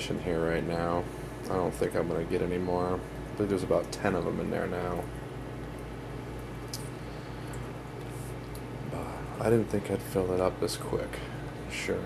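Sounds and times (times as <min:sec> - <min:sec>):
aquarium pumps humming: 0:00.0 - 0:12.0.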